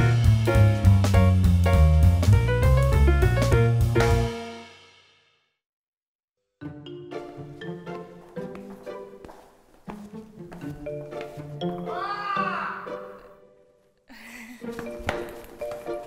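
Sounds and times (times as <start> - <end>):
light bouncy plucked music: 0.0 - 4.4, 6.6 - 13.6, 14.6 - 16.0
long yell: 11.8 - 12.9.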